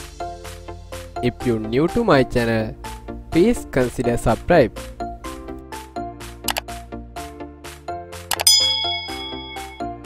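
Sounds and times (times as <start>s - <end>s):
background music with steady beat: 0.0s - 10.0s
quick clicks: 6.5s - 6.7s
bright bell ding: 8.3s - 10.0s.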